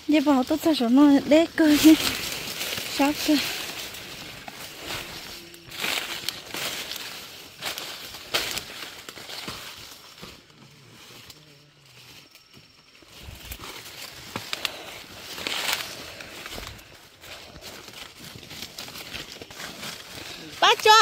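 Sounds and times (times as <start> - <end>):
dry corn leaves rustling: 0.0 - 21.0
footsteps on dry litter: 0.0 - 21.0.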